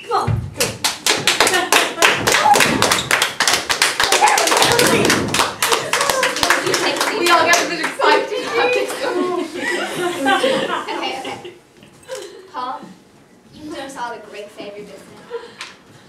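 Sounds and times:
group applauding: 0.6s - 10.1s.

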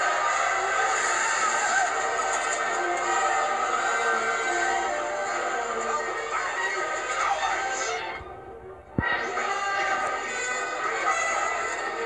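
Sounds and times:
film soundtrack music with voices: 0.0s - 12.0s.

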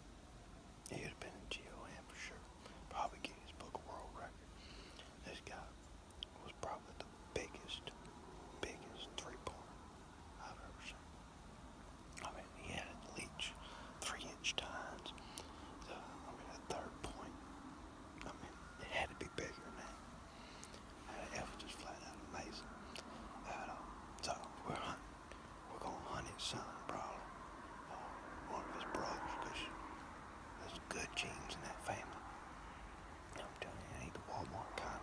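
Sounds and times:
man whispering: 0.8s - 11.1s, 12.2s - 17.6s, 18.2s - 30.0s, 30.6s - 32.3s, 33.3s - 35.0s.

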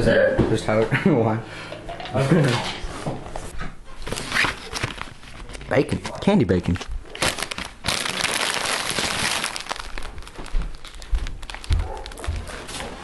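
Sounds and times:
plastic packaging crinkling: 4.0s - 13.0s.

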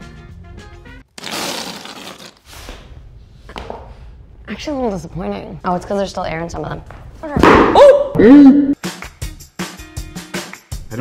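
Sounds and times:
whoopee cushions deflating: 1.1s - 2.7s.

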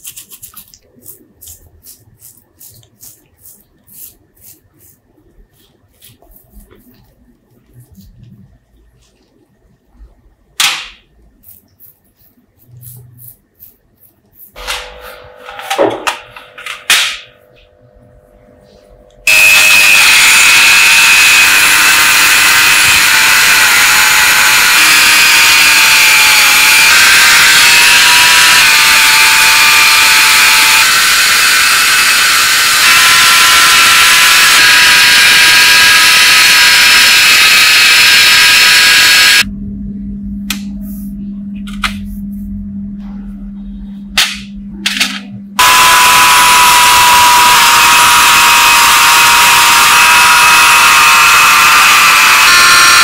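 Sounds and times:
rotary tool wire brush whine: 19.2s - 39.5s, 45.6s - 53.0s.

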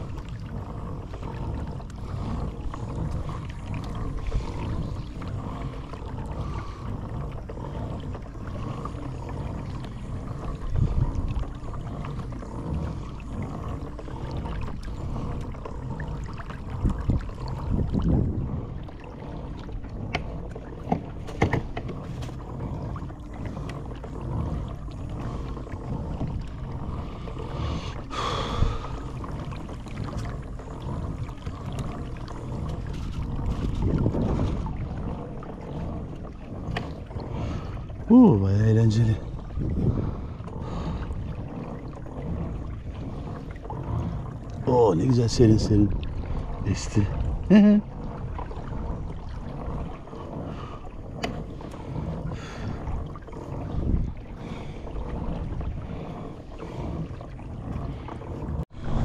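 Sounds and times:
low rumble: 0.0s - 59.0s
water lapping against plastic hull: 0.0s - 59.0s
knocks on hull: 20.1s - 22.4s.

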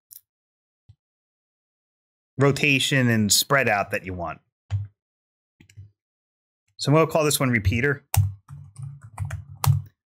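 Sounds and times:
computer keyboard typing: 8.1s - 10.0s.

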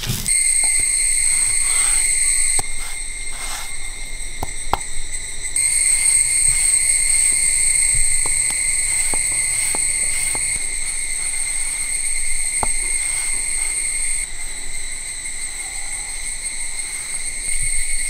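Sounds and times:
insects buzzing: 0.0s - 18.0s.

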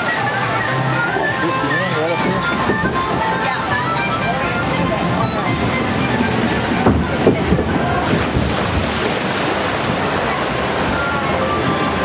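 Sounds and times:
water rushing and splashing: 0.0s - 12.0s.

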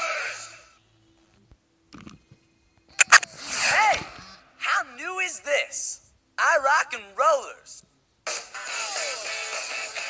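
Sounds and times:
person speaking: 3.6s - 7.8s
music: 8.2s - 10.0s.

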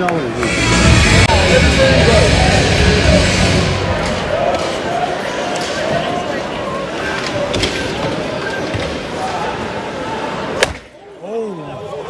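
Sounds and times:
crowd voices and shouts: 0.0s - 12.0s
loud arena music: 0.3s - 5.9s.

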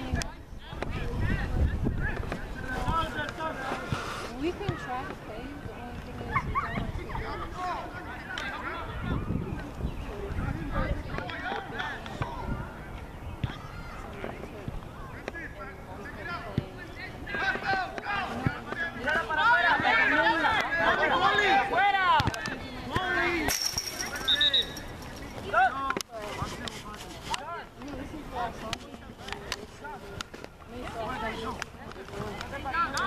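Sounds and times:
voices shouting: 0.7s - 26.0s.

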